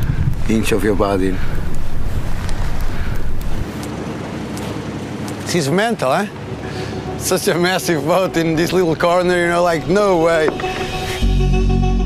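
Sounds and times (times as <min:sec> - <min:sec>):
wind rushing over microphone: 0:00.0 - 0:05.3
water noise: 0:00.0 - 0:11.2.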